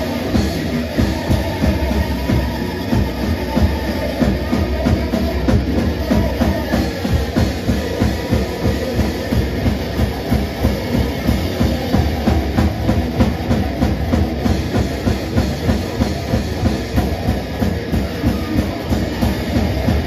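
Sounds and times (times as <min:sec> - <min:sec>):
distorted electric guitar: 0:00.0 - 0:20.0
drum kit: 0:00.0 - 0:20.0.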